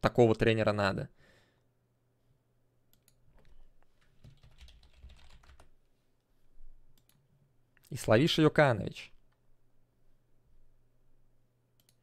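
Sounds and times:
keyboard typing: 0:02.9 - 0:05.8.

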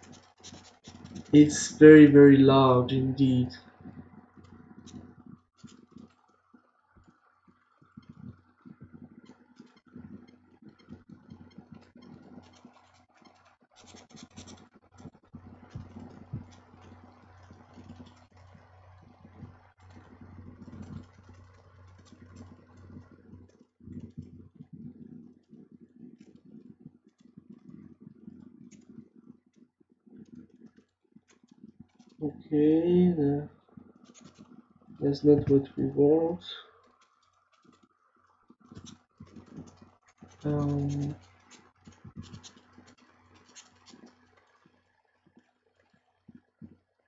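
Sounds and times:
computer mouse clicks: 0:00.0 - 0:01.5, 0:03.8 - 0:32.2, 0:33.8 - 0:35.0, 0:36.8 - 0:46.8
low mechanical hum: 0:00.0 - 0:47.0.

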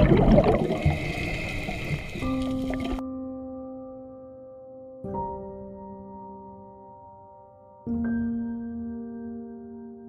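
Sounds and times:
underwater exhaust bubbles burbling: 0:00.0 - 0:03.0.

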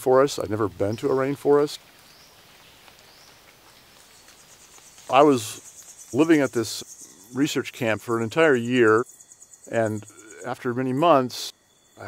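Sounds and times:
distant forest wildlife hiss: 0:00.0 - 0:12.0
quiet high animal calls: 0:04.0 - 0:07.7.

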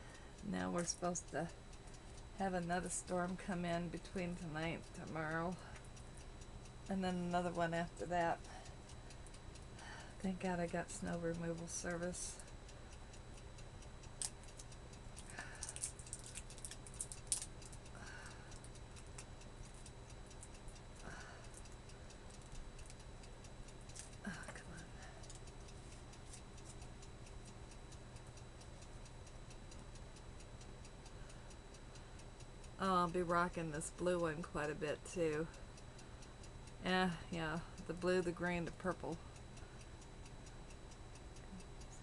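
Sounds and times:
clock ticking: 0:00.0 - 0:42.0.

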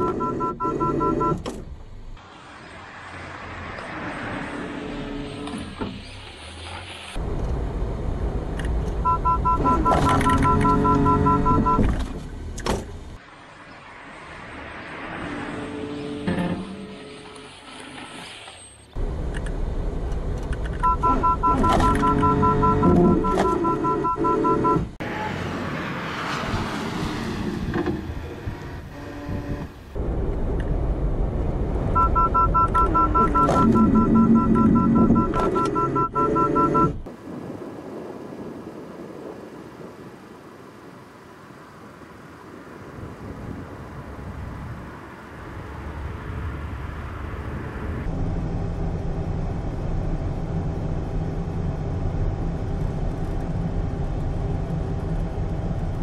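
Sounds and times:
car alarm two-note beeping: 0:09.0 - 0:11.8, 0:20.8 - 0:24.8, 0:32.0 - 0:37.0.

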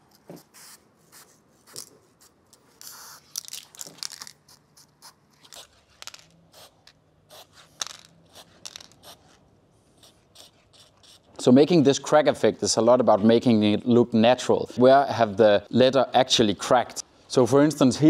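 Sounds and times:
spray paint can hissing: 0:02.8 - 0:03.3, 0:10.0 - 0:11.2.

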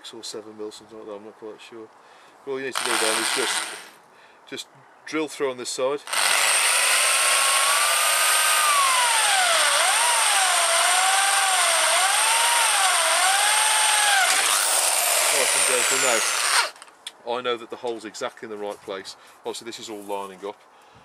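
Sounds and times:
electric drill boring metal: 0:02.8 - 0:03.9, 0:06.1 - 0:16.8.

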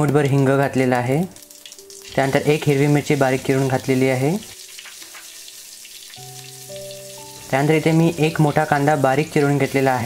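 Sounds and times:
hot oil sizzling in a pan: 0:00.0 - 0:10.0
soft background music: 0:00.0 - 0:10.0.

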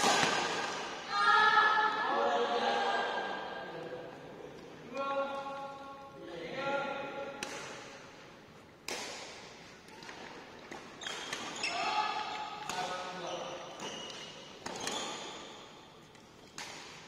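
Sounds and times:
rackets striking shuttlecock: 0:07.3 - 0:08.0, 0:08.8 - 0:11.6, 0:13.8 - 0:15.5, 0:16.2 - 0:17.0.

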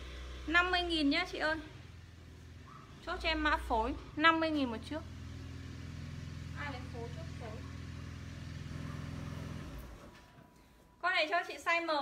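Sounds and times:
vehicle engine hum: 0:00.0 - 0:10.2.

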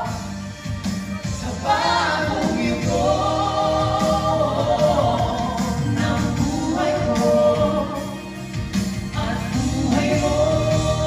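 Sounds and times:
singers singing in harmony: 0:00.0 - 0:11.0.

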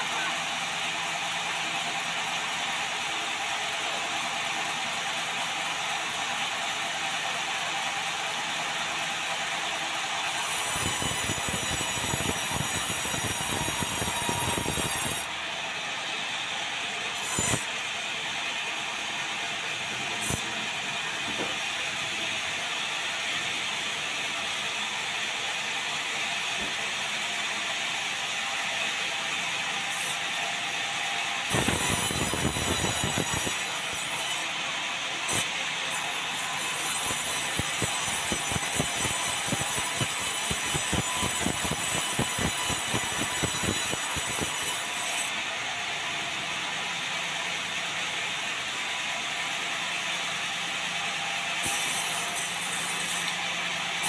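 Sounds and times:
sawmill saw cutting log: 0:00.0 - 0:54.0.

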